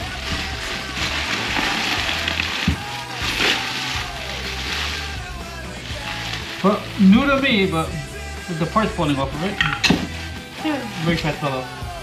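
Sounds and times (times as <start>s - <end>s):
bubble wrap crinkling: 0.0s - 12.0s
music with steady bass: 0.0s - 12.0s.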